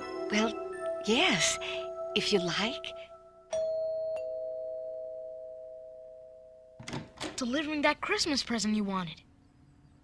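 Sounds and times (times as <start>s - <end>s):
two-note doorbell chime: 3.5s - 7.0s.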